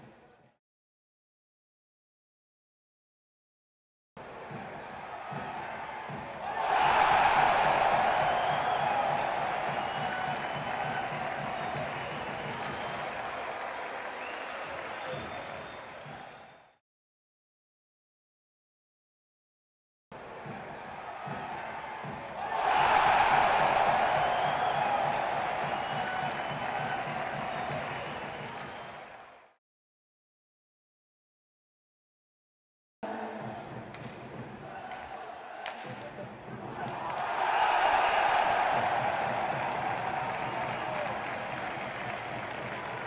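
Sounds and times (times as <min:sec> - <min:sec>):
crowd applauding: 0:05.0 - 0:16.8, 0:21.0 - 0:29.6, 0:36.8 - 0:43.0.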